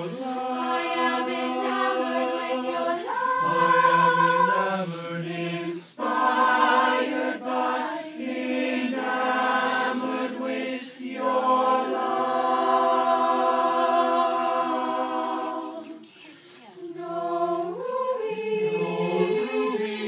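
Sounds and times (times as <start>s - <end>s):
a cappella choir singing: 0.0s - 20.0s.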